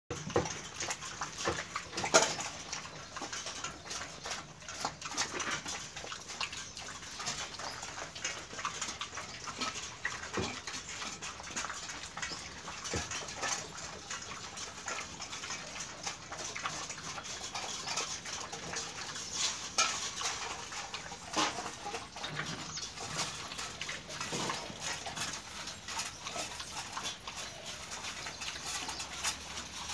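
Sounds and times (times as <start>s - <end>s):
dog lapping and chewing food: 0.1s - 29.9s.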